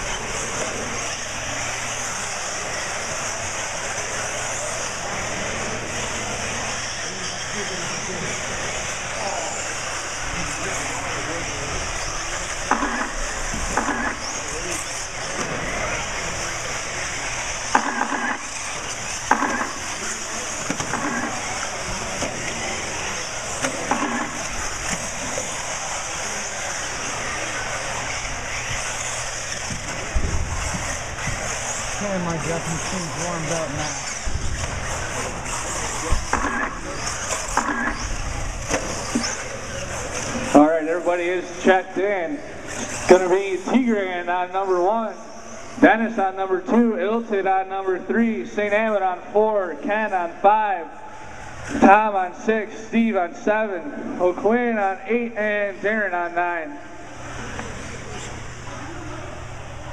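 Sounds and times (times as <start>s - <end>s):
model car engines droning: 0.0s - 59.9s.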